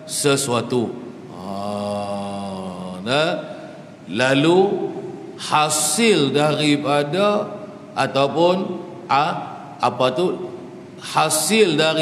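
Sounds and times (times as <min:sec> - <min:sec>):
man holding a long ha: 0:01.3 - 0:03.6.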